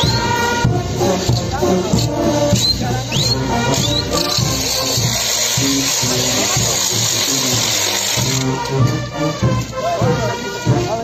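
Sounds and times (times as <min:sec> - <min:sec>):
brass band music: 0:00.0 - 0:11.0
dense high hiss: 0:00.2 - 0:08.8.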